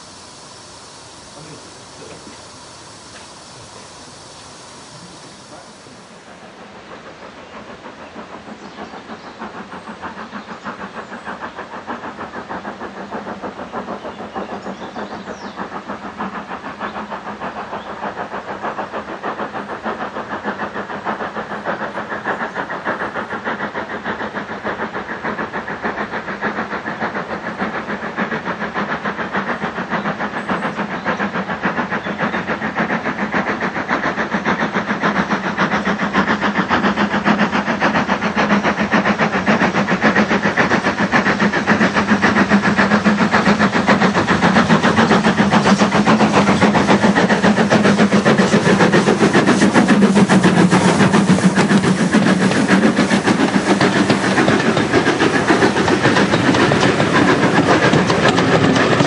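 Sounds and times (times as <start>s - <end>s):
steam locomotive exhaust beats: 0.0s - 59.0s
train coaches rolling past: 0.0s - 59.0s.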